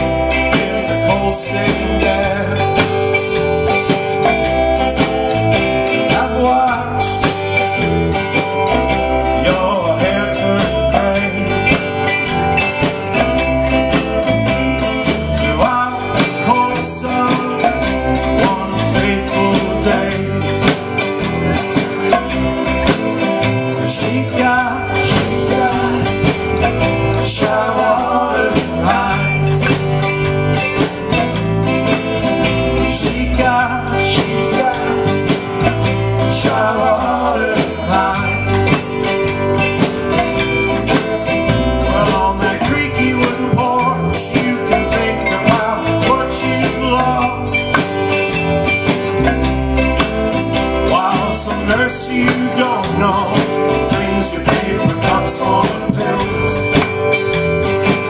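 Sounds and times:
man singing lead vocal: 0.0 - 30.3, 32.5 - 39.2, 41.6 - 48.1, 49.1 - 58.0
electric bass: 0.0 - 58.0
strummed acoustic guitar: 0.0 - 58.0.

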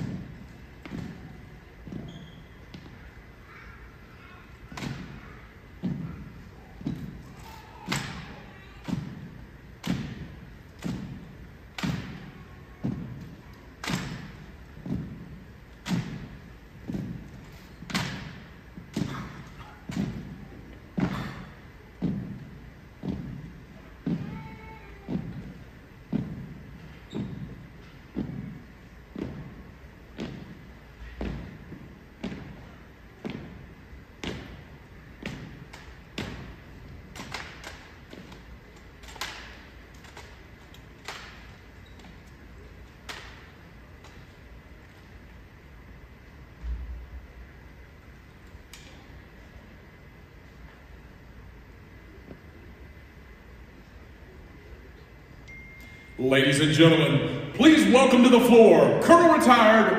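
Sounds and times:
stomps on hardwood floor: 22.0 - 24.5, 26.1 - 29.6.

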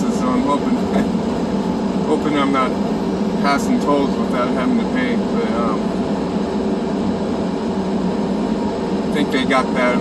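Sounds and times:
road noise inside cab: 0.0 - 10.0
truck engine drone: 0.0 - 10.0.

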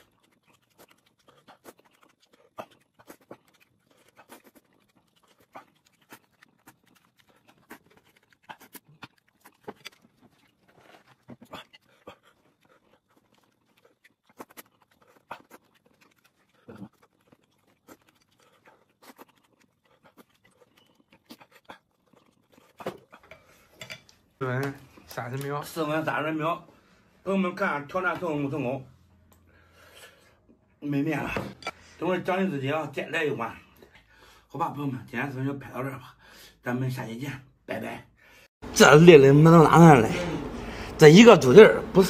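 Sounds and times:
chewing: 0.0 - 25.8
person breathing: 29.4 - 30.5, 34.0 - 34.5, 38.2 - 38.6, 40.2 - 41.0.

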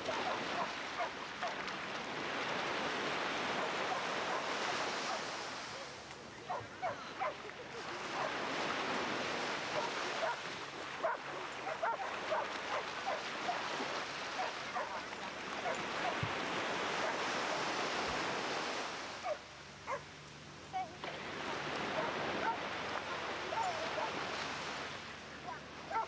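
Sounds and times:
small waves washing onto sand: 0.0 - 26.0
dogs barking: 0.2 - 1.6, 6.4 - 7.4, 8.1 - 8.4, 9.7 - 10.4, 11.0 - 13.6, 14.4 - 16.2, 19.2 - 20.1, 20.8 - 21.0, 22.0 - 24.2, 25.4 - 26.0.

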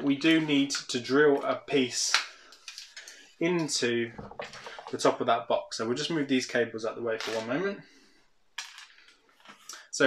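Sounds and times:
small plastic parts clattering: 1.4 - 3.3, 4.2 - 5.0, 7.2 - 7.6, 8.6 - 9.7.

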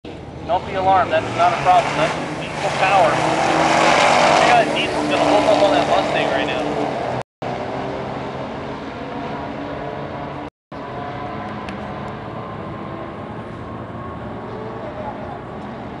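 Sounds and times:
racing car engines running: 0.1 - 16.0
people talking: 0.5 - 6.7.

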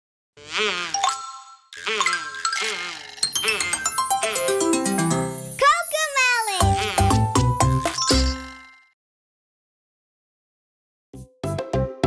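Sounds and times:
bell-like chime: 3.2 - 6.7, 7.6 - 9.0.

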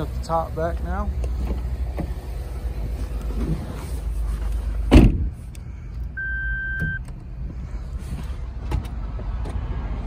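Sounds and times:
car engine idling: 0.0 - 6.2
car door shutting: 4.8 - 5.4.

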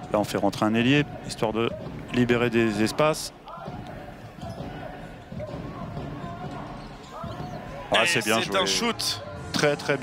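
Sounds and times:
murmur of crowd voices: 0.0 - 10.0.

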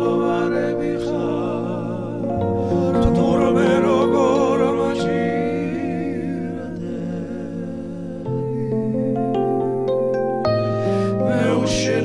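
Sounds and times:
man singing with vibrato: 0.0 - 9.4, 11.1 - 12.0
electric keyboard chords: 0.0 - 12.0.

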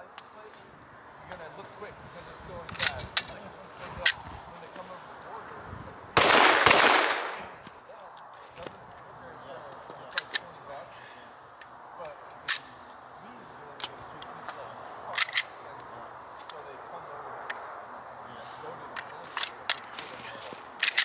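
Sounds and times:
pistol shots: 6.2 - 7.6.

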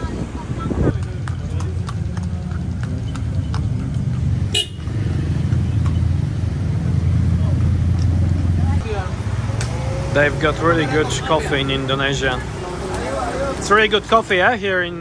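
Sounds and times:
car engines rumbling in traffic: 0.0 - 15.0
hooves clip-clopping on asphalt: 0.5 - 4.8.

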